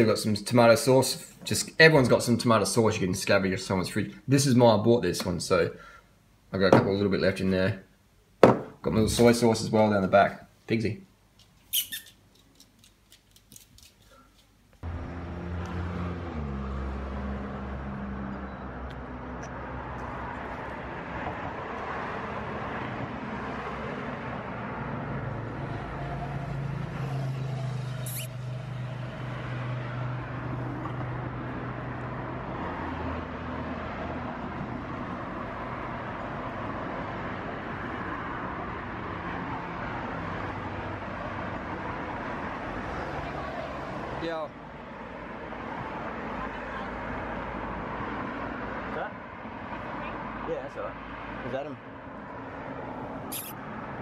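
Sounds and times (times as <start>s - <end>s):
street traffic noise: 0.0s - 7.4s, 8.4s - 10.0s, 11.2s - 54.0s
vehicle engine humming: 14.8s - 21.3s
brief high chirp: 28.1s - 28.3s, 53.3s - 53.6s.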